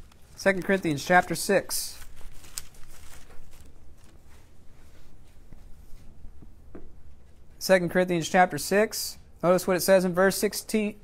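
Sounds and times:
paper pages rustling: 0.0s - 5.4s.

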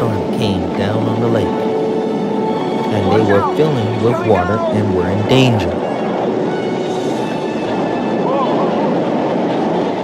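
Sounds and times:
heavy waves against a wooden boat: 0.0s - 10.0s
rain: 0.0s - 10.0s
wind: 0.0s - 10.0s.

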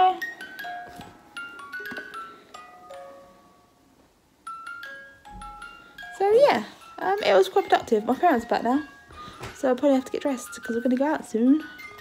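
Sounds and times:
electronic toy chiming tune: 4.5s - 9.1s, 11.5s - 12.0s.

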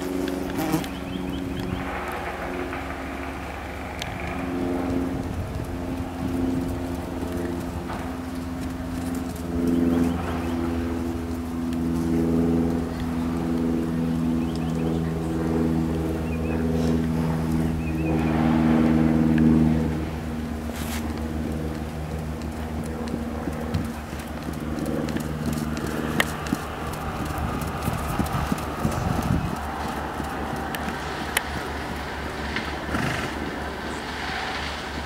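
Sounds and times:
horse hoofbeats on sand: 0.0s - 35.0s
vehicle engine running: 0.0s - 35.0s.

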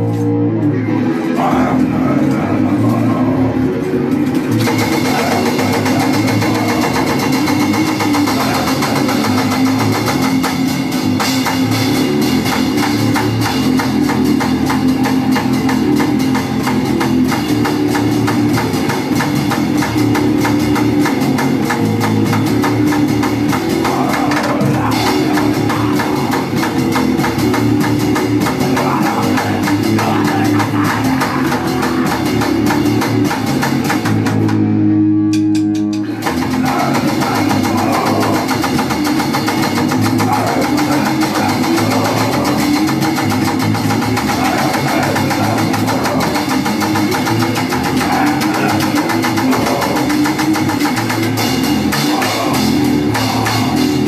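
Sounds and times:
punk band playing live: 0.0s - 54.0s.

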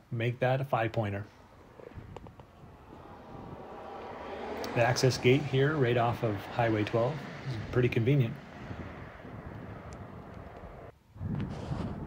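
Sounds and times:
wind rumbling on microphone: 1.6s - 12.0s.

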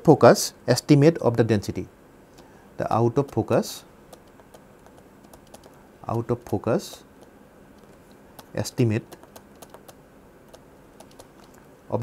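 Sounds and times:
stylus tapping on tablet: 4.1s - 11.6s.

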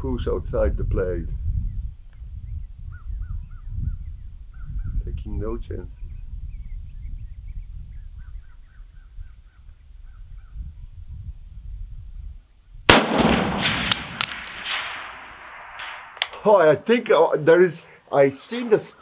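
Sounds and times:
wind rumble on microphone: 0.0s - 16.1s
rifle shot echoing: 12.9s - 16.4s
light metallic clinks: 13.9s - 14.7s.

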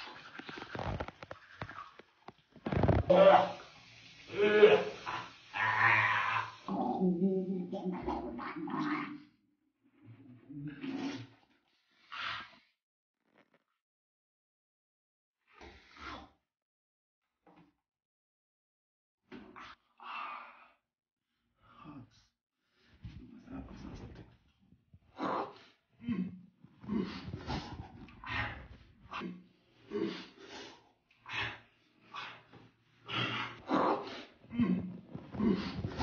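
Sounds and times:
person making wordless vocal sounds: 3.0s - 3.6s, 4.3s - 9.3s, 33.2s - 36.0s
person humming: 6.7s - 8.0s.

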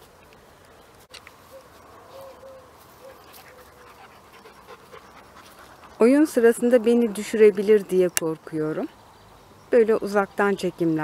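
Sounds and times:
dog panting faintly: 3.0s - 6.6s.

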